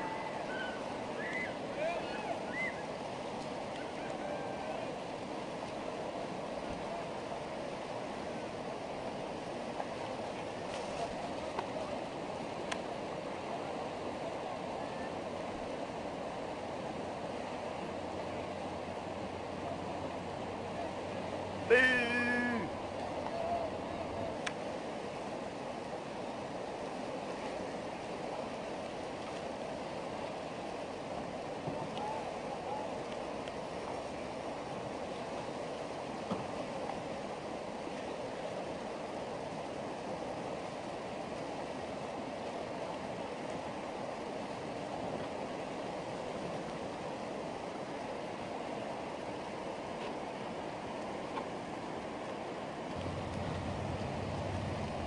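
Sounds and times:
river rapids rushing: 0.0s - 55.0s
low hum: 52.9s - 55.0s.

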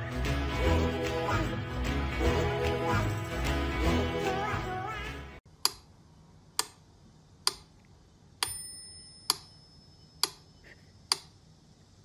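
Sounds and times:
metronome bell ring: 8.4s - 10.2s.

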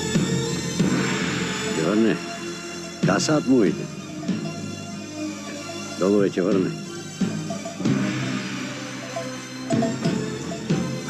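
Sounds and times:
film score sustained notes: 0.0s - 11.0s.

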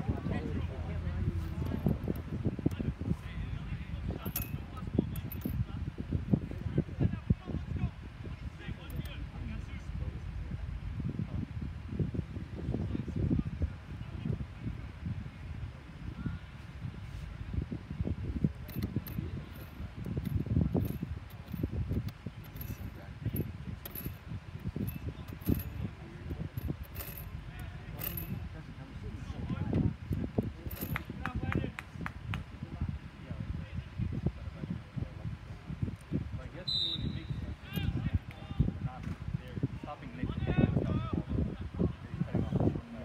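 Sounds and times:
wind rumbling on microphone: 0.0s - 43.0s
high whistle: 36.6s - 37.5s.

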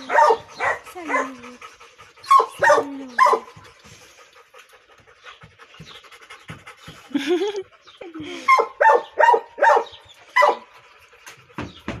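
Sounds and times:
dog yipping: 8.5s - 10.7s.

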